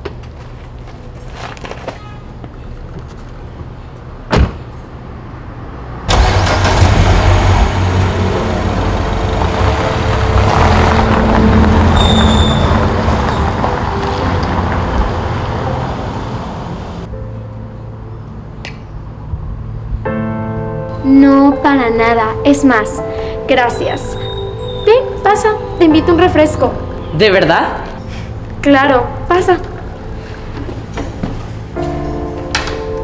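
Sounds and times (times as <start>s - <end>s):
car door shutting: 4.3s - 4.7s
car driving off: 5.7s - 17.1s
car engine starting: 6.0s - 17.1s.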